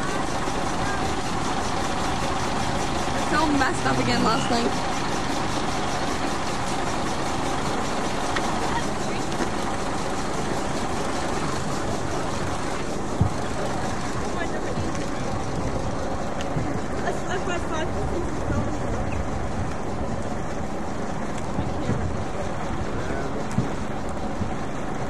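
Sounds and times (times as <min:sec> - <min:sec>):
people's voices: 0:03.1 - 0:04.8, 0:11.9 - 0:19.3.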